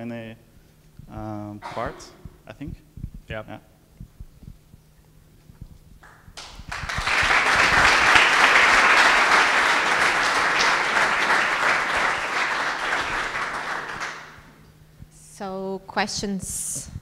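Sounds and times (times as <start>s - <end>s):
audience applauding: 6.0s - 14.5s.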